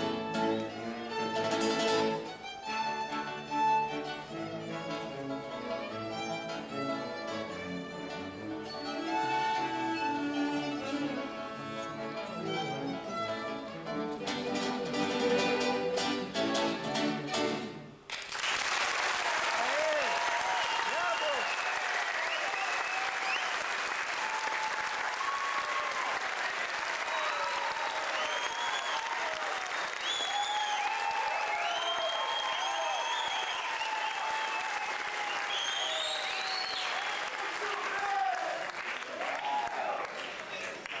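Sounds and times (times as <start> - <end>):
audience applauding: 18.1 - 41.0.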